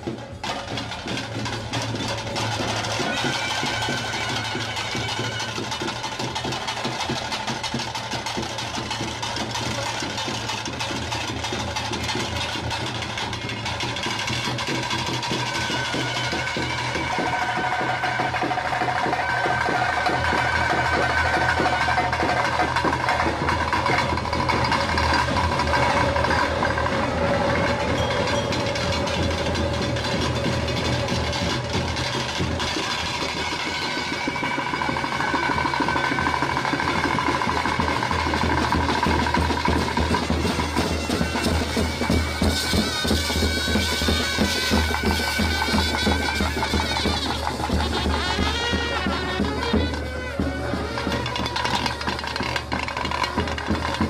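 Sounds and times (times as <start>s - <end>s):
dense steady drumming: 0.0s - 54.0s
reed wind instrument playing: 2.2s - 6.9s, 13.2s - 54.0s.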